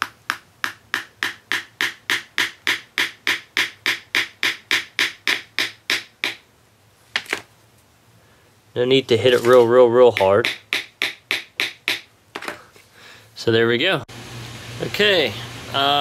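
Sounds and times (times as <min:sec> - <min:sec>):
hammer tapping a nail: 0:00.0 - 0:06.4, 0:10.1 - 0:12.5.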